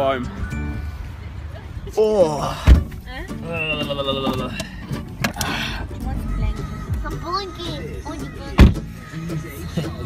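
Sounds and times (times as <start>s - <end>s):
background music: 3.1s - 10.0s
car interior rumble: 5.0s - 9.1s
voices: 5.4s - 10.0s.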